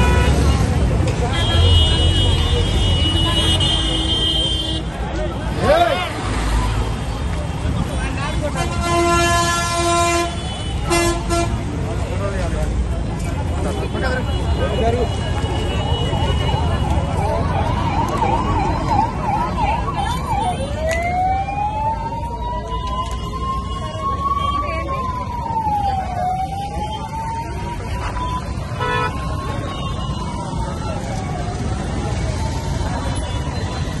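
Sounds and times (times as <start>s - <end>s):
voices: 0.0s - 9.2s, 11.6s - 34.0s
street noise: 0.0s - 34.0s
traffic rumble: 0.0s - 34.0s
siren wailing: 17.2s - 34.0s
vehicle horn honking: 28.8s - 29.1s.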